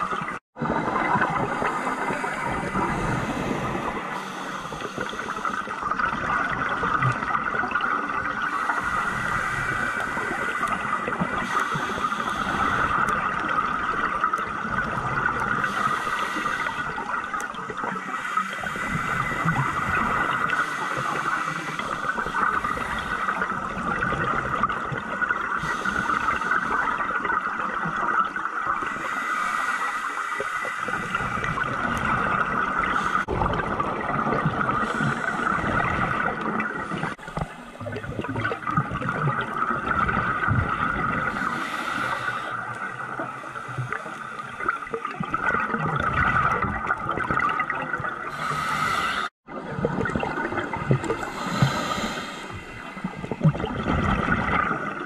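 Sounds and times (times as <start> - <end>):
bubbles gurgling underwater: 0.0 - 29.1, 30.4 - 55.0
muffled underwater rush: 0.0 - 55.0.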